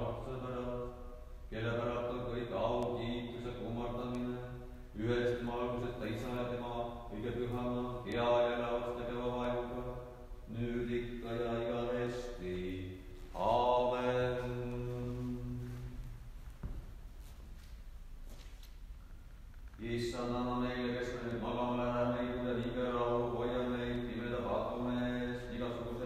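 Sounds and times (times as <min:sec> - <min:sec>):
man chanting: 0:00.0 - 0:16.0, 0:19.8 - 0:26.0.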